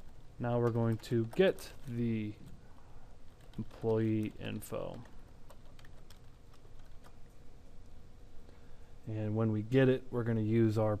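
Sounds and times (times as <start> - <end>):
keyboard keystrokes: 3.4 - 7.2.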